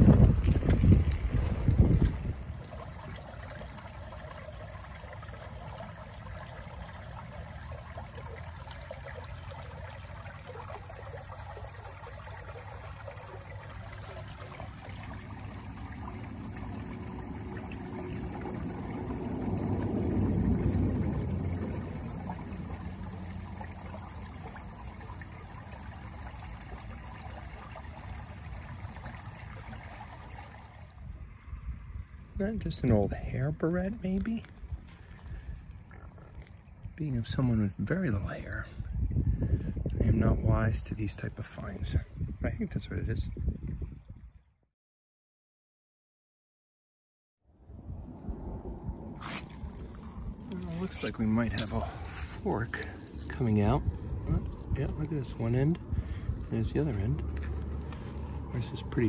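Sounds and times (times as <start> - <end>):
wind buffeting microphone: 0.0 - 3.2, 15.0 - 24.4, 34.3 - 44.4, 47.7 - 59.0
shallow water trickling: 0.0 - 31.6, 32.9 - 40.0, 47.9 - 59.0
low rumble: 15.0 - 25.2, 47.5 - 59.0.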